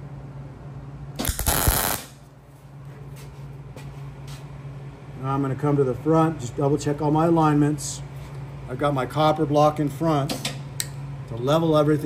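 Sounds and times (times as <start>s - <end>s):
low steady hum: 0.0s - 12.0s
welder arc burst: 1.2s - 2.2s.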